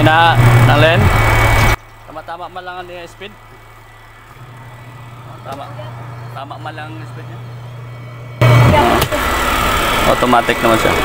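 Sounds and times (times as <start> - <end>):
washing machine motor humming: 0.0 - 11.0.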